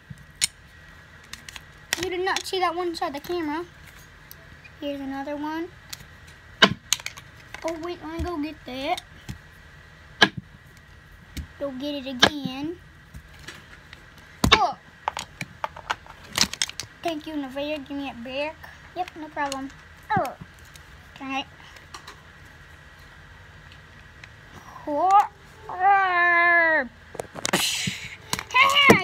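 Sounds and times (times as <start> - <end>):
child exclaiming: 14.5 - 14.8, 24.8 - 26.9, 28.5 - 29.0.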